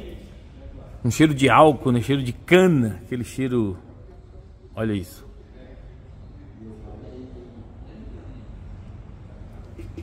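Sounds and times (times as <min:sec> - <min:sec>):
low workshop hum: 0:00.0 - 0:10.0.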